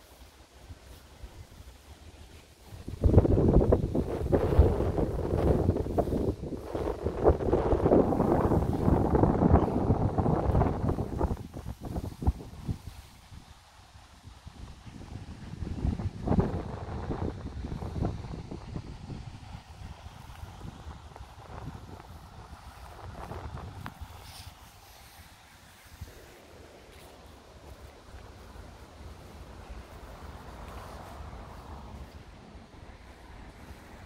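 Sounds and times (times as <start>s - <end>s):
wind buffeting microphone: 0.0s - 34.0s.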